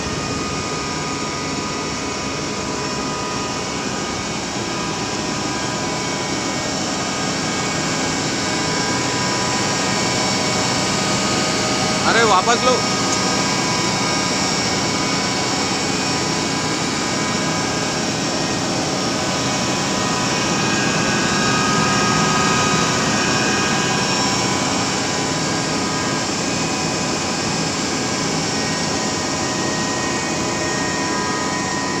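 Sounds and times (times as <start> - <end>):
steady high whine: 0.0 - 32.0.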